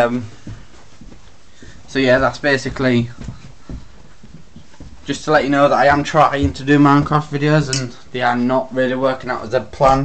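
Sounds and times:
footsteps going up stairs: 0.0s - 8.1s, 9.6s - 10.0s.

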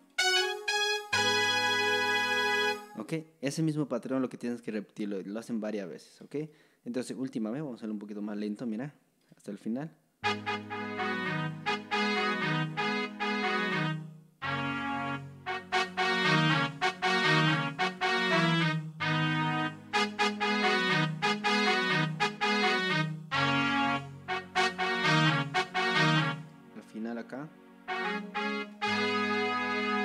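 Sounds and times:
electronic keyboard brass melody: 0.0s - 3.0s, 10.2s - 30.0s.

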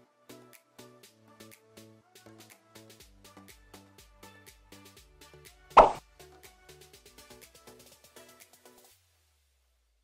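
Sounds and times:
background music with steady beat: 0.0s - 9.7s
loud pop sound effect: 5.8s - 6.0s.

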